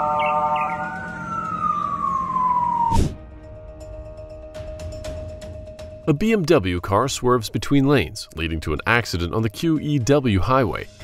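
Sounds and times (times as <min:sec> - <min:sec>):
siren-like falling tone: 0:00.0 - 0:03.3
steady background tones: 0:00.0 - 0:11.0
sharp swoosh: 0:02.8 - 0:03.2.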